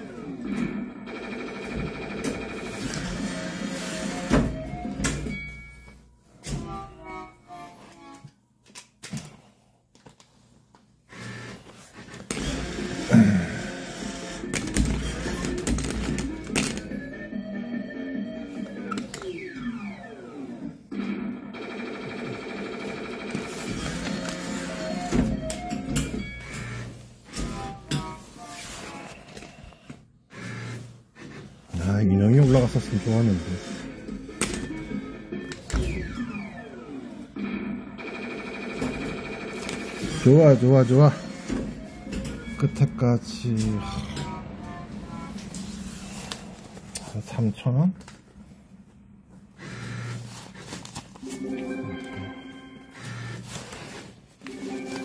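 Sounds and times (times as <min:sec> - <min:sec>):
electronic arcade music: 0:13.6 - 0:20.8, 0:32.3 - 0:45.7, 0:51.2 - 0:53.0.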